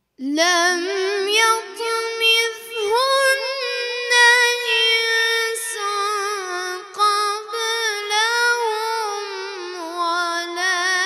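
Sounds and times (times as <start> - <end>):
boy chanting melodic recitation: 0.2 - 11.0.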